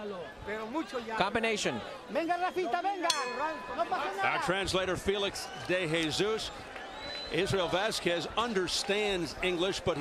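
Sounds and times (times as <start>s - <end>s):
boxing ring bell ding: 3.1s - 4.8s.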